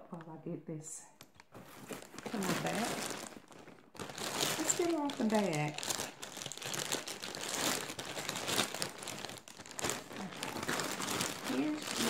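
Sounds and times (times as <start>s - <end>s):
plastic bag crinkling: 1.2s - 12.0s.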